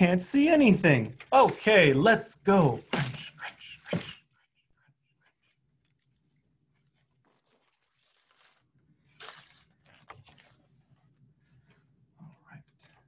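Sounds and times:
paper rustling and crunching: 0:06.8 - 0:11.0.

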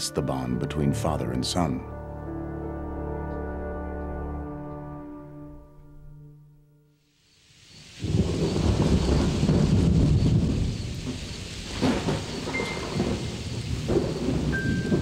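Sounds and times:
heavy rain: 0:07.2 - 0:15.0
rumbling thunder: 0:07.8 - 0:15.0
sharp thunder cracks: 0:08.0 - 0:15.0.

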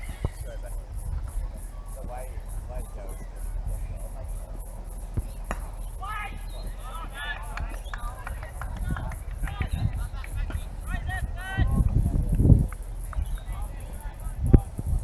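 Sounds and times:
spectators talking: 0:00.0 - 0:15.0.

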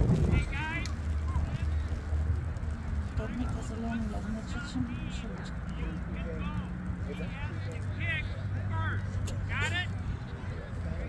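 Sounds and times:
wind rumbling on microphone: 0:00.0 - 0:06.0
faint distant voices: 0:00.2 - 0:11.0.

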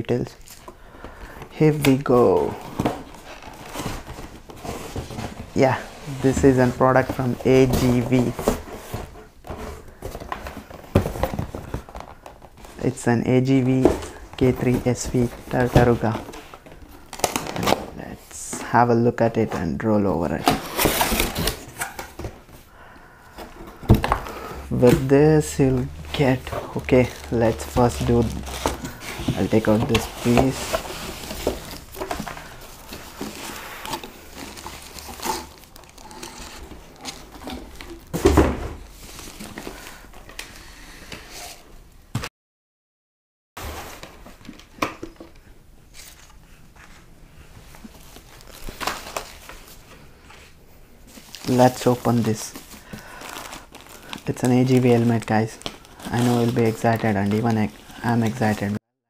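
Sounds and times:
cardboard rustling: 0:00.3 - 0:18.7, 0:19.5 - 0:40.4, 0:43.6 - 0:58.8
cardboard box being handled: 0:01.8 - 0:12.8, 0:24.8 - 0:39.7.

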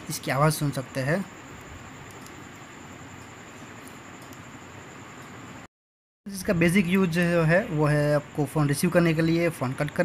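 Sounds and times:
steady background hiss: 0:00.0 - 0:05.7, 0:06.3 - 0:10.0.

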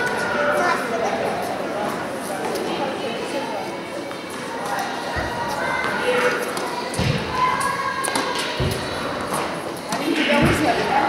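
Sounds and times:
echoing voices and chatter: 0:00.0 - 0:11.0.

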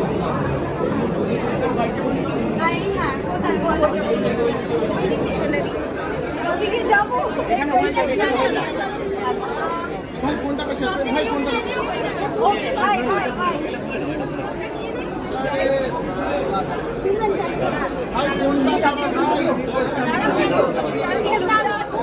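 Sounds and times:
crowd chatter: 0:00.0 - 0:22.0.

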